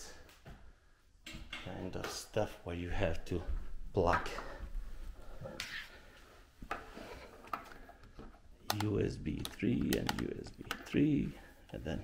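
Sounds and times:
cables clicking on wooden table: 0:07.4 - 0:11.0.

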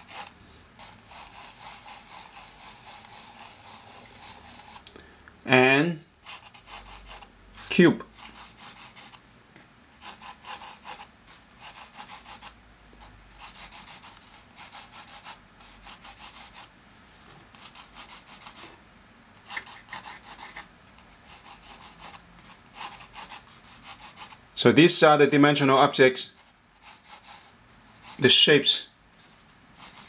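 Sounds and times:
pencil scratching on paper: 0:00.0 - 0:04.8, 0:06.2 - 0:07.3, 0:08.2 - 0:09.2, 0:10.0 - 0:16.7, 0:17.5 - 0:18.7, 0:19.4 - 0:24.4, 0:26.3 - 0:28.4, 0:29.2 - 0:30.0.

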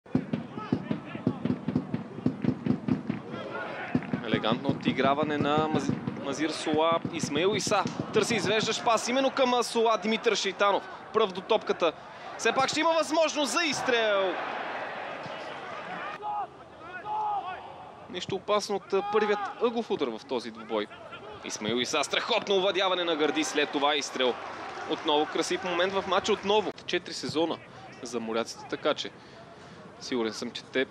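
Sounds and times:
sharp knocks: 0:00.1 - 0:03.2
commentary: 0:03.3 - 0:29.2.

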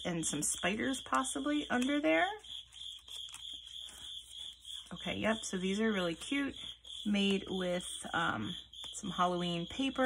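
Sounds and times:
paper envelopes rustling: 0:00.0 - 0:06.9.

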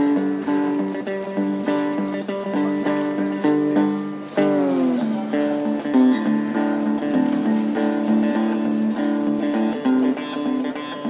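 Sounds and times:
amplified slide banjo picking: 0:00.0 - 0:11.0.

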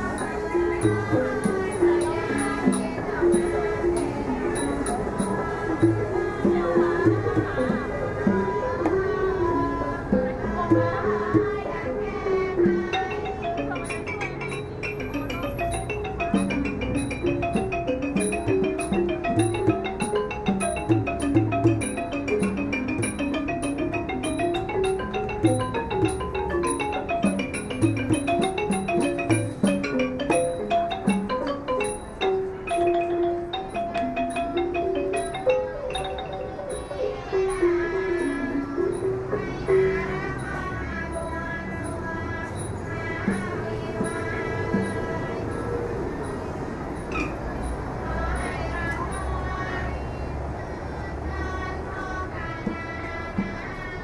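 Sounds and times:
wooden xylophone running notes: 0:00.0 - 0:49.8
city traffic rumble: 0:00.0 - 0:54.0.

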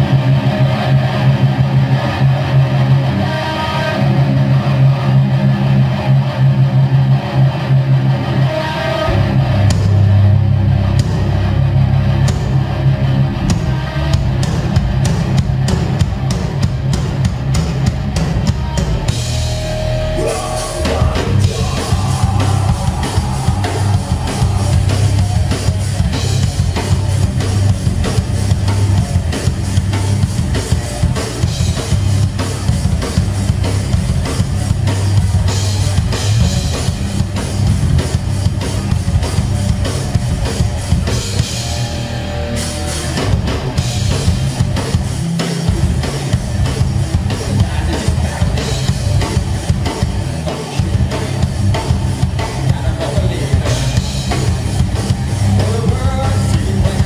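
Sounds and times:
distorted electric guitars: 0:00.0 - 0:57.0
drum kit: 0:00.0 - 0:57.0.

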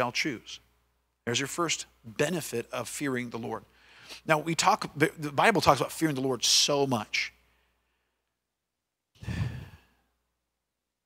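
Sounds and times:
man sighing into microphone: 0:09.2 - 0:10.1.

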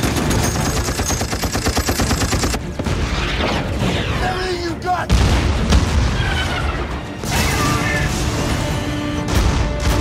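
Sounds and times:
orchestral score: 0:02.6 - 0:10.0.

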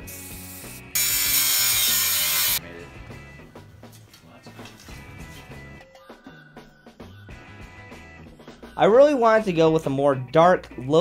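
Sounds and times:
angle grinder cutting metal: 0:00.4 - 0:02.6.

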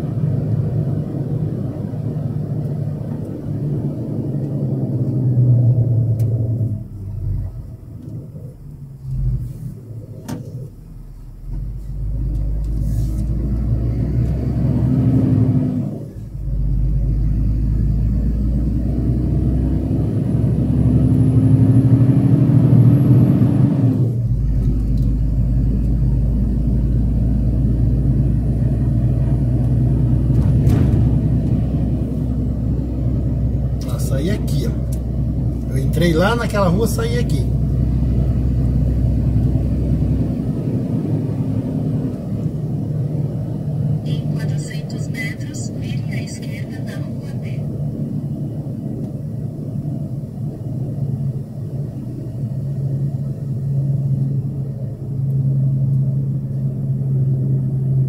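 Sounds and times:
diesel truck engine accelerating: 0:00.0 - 0:58.0.

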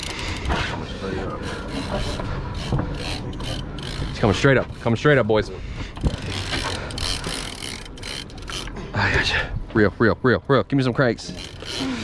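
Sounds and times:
fishing reel gears whirring: 0:00.0 - 0:05.4, 0:06.0 - 0:08.8, 0:11.2 - 0:12.0
fishing reel click: 0:06.2 - 0:08.7.

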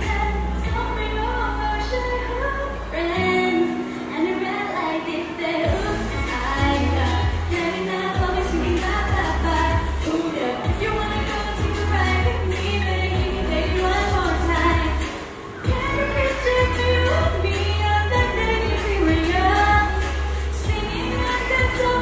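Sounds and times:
pop backing music with drums: 0:00.0 - 0:04.2, 0:05.6 - 0:22.0
girl singing into microphone: 0:00.0 - 0:22.0.

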